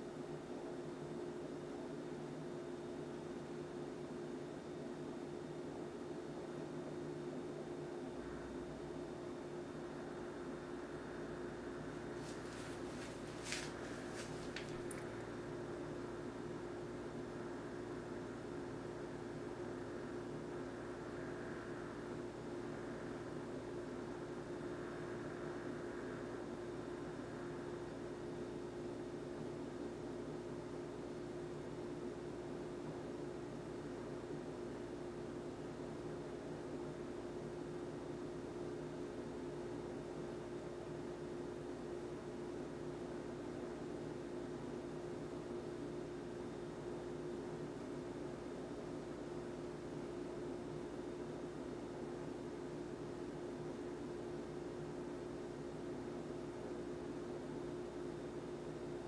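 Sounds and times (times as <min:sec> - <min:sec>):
steady hum with mid-pitched tone: 0:00.0 - 0:59.0.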